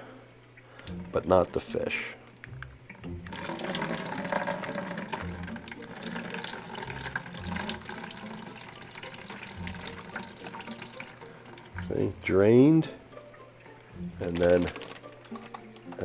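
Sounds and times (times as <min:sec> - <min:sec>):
water pouring into plastic bucket: 0:03.3 - 0:12.2, 0:14.2 - 0:15.6.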